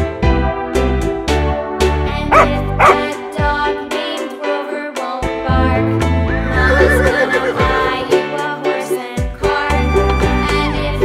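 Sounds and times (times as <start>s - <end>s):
upbeat children's music: 0.0s - 11.0s
horse whinny: 6.3s - 7.9s.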